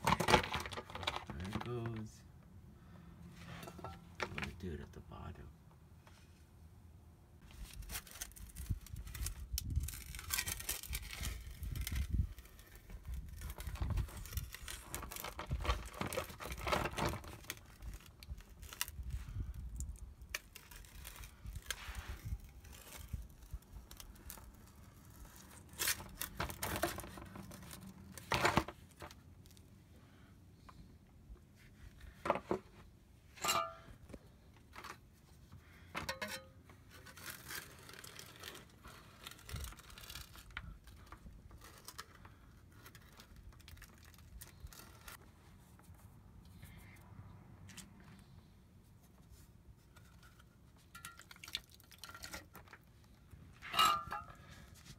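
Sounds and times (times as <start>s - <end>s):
metal scraper scraping: 3.4s - 4.1s, 53.6s - 54.5s.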